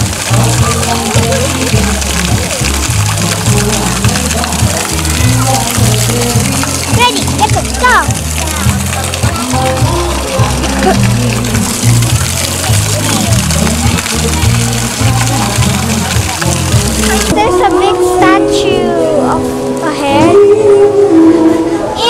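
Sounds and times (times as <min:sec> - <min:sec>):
upbeat guitar music: 0:00.0 - 0:20.9
children's voices: 0:06.9 - 0:08.6, 0:17.2 - 0:22.0.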